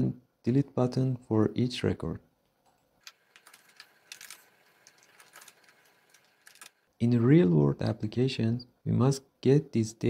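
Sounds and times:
computer keyboard typing: 3.0s - 6.8s.

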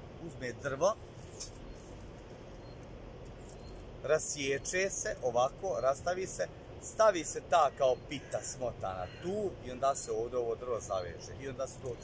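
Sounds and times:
low outdoor background rumble: 0.0s - 12.0s
rustle of leaves: 0.2s - 12.0s.

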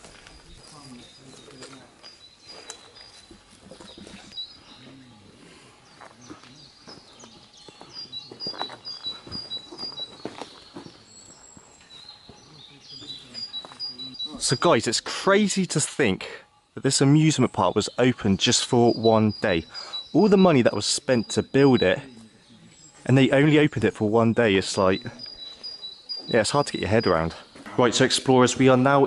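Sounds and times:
footsteps on leaf litter: 0.0s - 4.3s
faint distant voices: 0.0s - 29.0s
songbird calling high notes: 6.2s - 15.0s, 17.0s - 29.0s.

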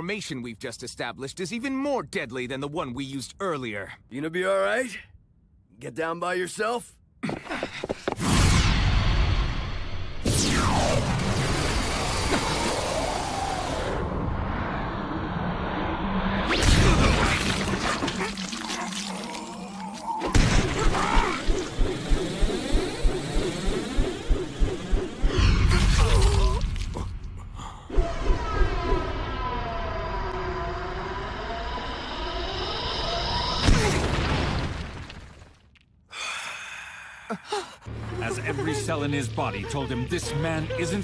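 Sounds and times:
rising whoosh: 8.2s - 17.8s
loud sudden impact: 16.2s - 18.2s.

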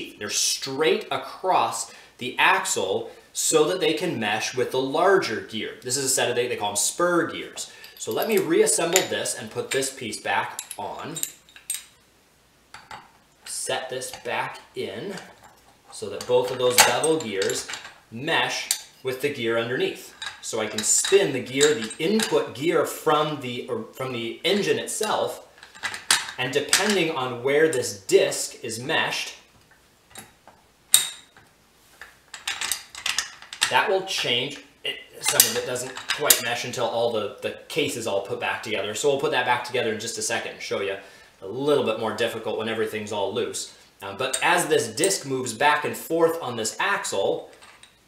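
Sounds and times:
steel gears clinking: 7.6s - 12.0s, 12.8s - 22.6s, 35.2s - 36.6s
metallic clicks: 10.5s - 12.0s, 15.1s - 19.0s, 19.9s - 22.6s, 35.2s - 36.6s
metal gears clinking: 15.1s - 18.0s, 20.0s - 22.5s.

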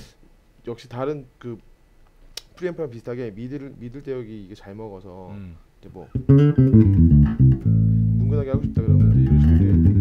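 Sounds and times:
electric bass guitar notes: 6.1s - 10.0s.

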